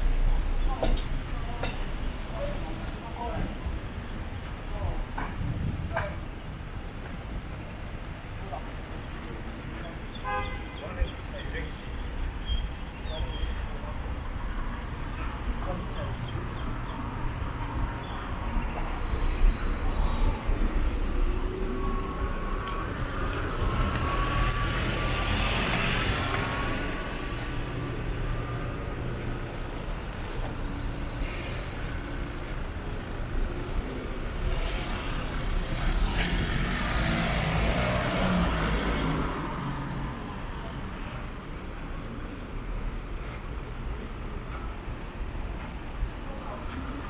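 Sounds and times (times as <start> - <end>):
traffic rumble: 0.0 - 47.0.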